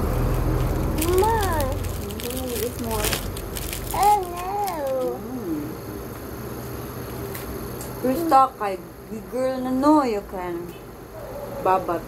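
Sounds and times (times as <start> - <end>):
toddler whining: 1.0 - 1.8, 3.9 - 5.6.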